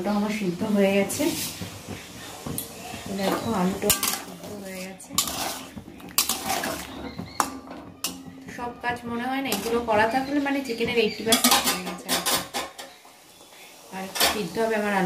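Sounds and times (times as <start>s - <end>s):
water boiling: 0.0s - 15.0s
metal spatula clinking on pan: 3.3s - 4.3s, 6.2s - 8.3s, 11.2s - 13.0s.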